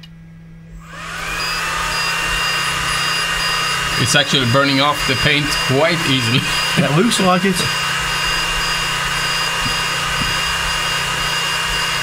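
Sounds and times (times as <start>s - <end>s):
laser engraver fan whir: 0.6s - 12.0s
thin high whine: 0.7s - 12.0s.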